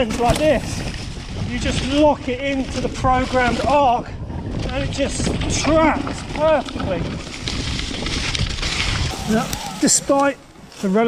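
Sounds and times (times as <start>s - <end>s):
wind on microphone: 0.0s - 10.8s
bike tyres rolling on dirt trail: 0.0s - 11.0s.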